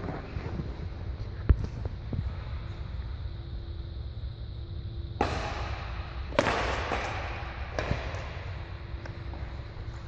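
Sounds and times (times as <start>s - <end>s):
rackets hitting shuttlecock: 5.1s - 9.6s.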